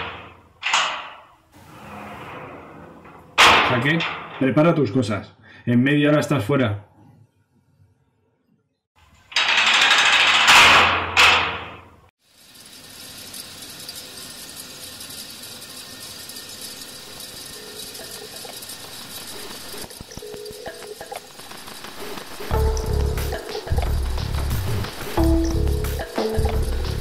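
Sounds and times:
bangs: 0.0s - 4.6s, 9.4s - 11.9s
loud mechanical rattling: 9.2s - 27.0s.

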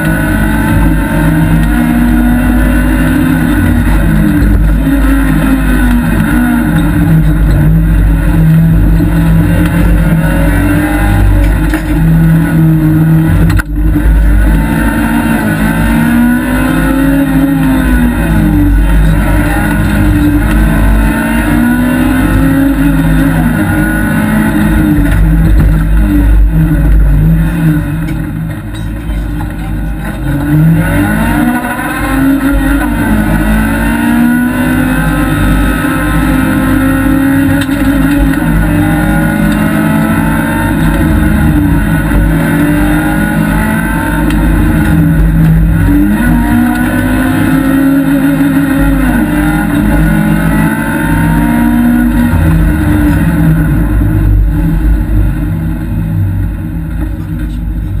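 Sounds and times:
car engine revving: 0.0s - 58.0s
road and tyre noise: 0.0s - 58.0s.

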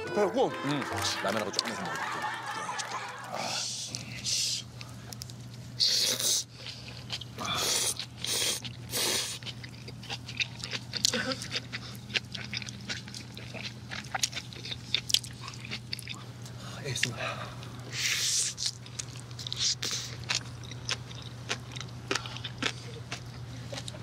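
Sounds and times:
faint steady hum: 0.0s - 24.0s
wet chewing and lip-smacking: 2.8s - 24.0s.

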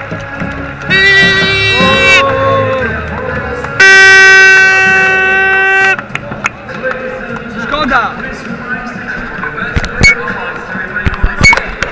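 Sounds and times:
loud horn blast: 0.9s - 2.9s, 3.7s - 6.0s.

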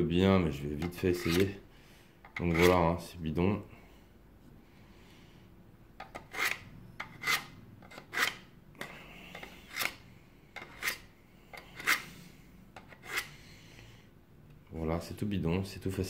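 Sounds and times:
blade rasping through knife sharpener: 0.8s - 1.6s, 2.4s - 2.8s, 6.2s - 8.4s, 10.6s - 12.1s, 12.9s - 13.4s.

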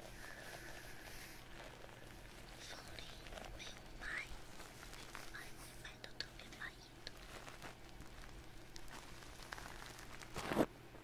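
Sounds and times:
whispered mouth sounds: 2.5s - 7.2s.

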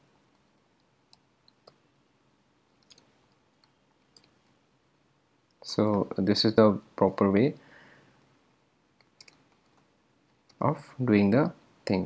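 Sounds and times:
computer keyboard keystrokes: 2.8s - 4.4s, 9.0s - 9.8s.

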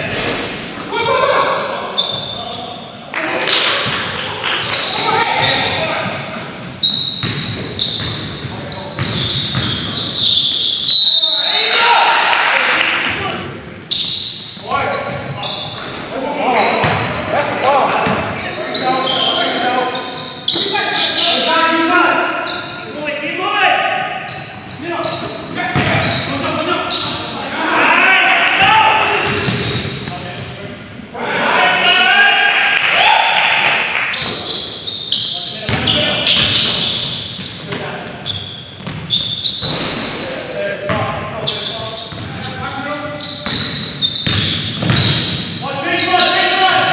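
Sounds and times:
players' voices and shouts: 0.0s - 9.8s, 10.9s - 38.2s, 40.0s - 46.9s
basketball bouncing on wooden floor: 7.2s - 9.9s, 44.2s - 45.4s.

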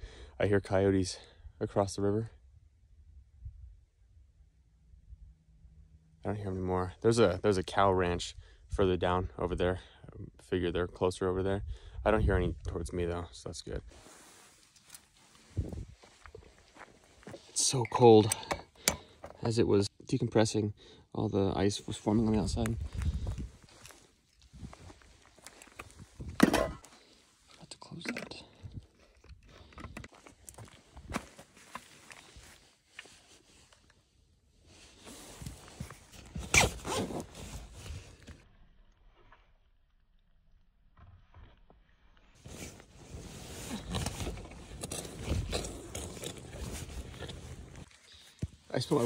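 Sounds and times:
nylon fabric rustling: 13.9s - 17.2s, 42.4s - 45.5s
footsteps on gravel: 14.9s - 17.6s, 21.9s - 26.9s
sleeping bag zipper: 36.2s - 37.8s, 42.4s - 47.9s.

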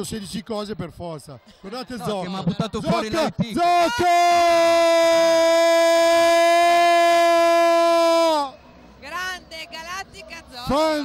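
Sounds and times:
man's long loud held shout: 3.6s - 8.5s.

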